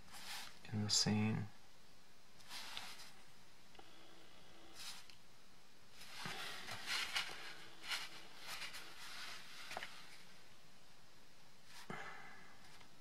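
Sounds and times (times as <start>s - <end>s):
card being handled: 6.0s - 10.0s.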